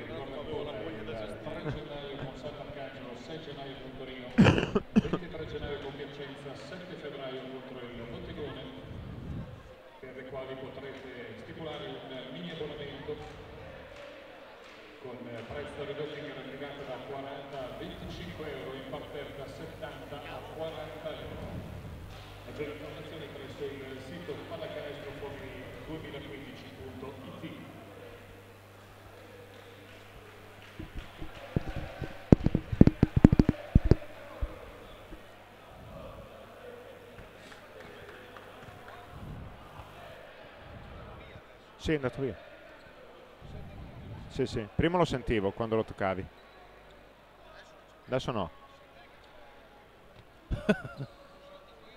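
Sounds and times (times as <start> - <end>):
echoing indoor chatter: 0.0 - 51.9
faint arena crowd noise: 0.0 - 51.9
low electrical hum: 16.6 - 41.5
microphone handling knocks: 30.8 - 34.1.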